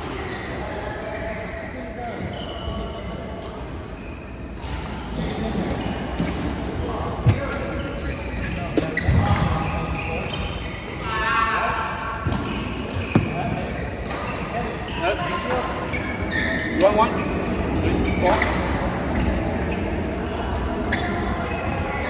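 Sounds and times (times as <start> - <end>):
murmur of players: 0.0 - 22.0.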